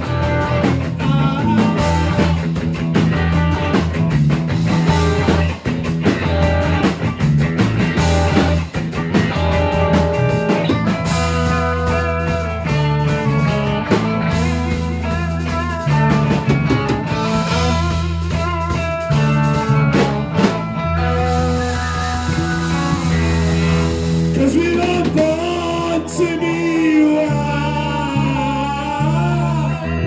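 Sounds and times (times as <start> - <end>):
person singing: 0.0 - 2.5, 20.4 - 30.0
live rock band playing: 0.0 - 30.0.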